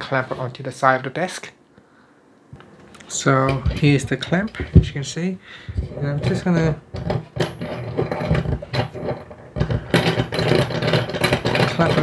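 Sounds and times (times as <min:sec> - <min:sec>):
metal screw rattling and scraping: 0:03.4 - 0:04.9, 0:05.7 - 0:12.0.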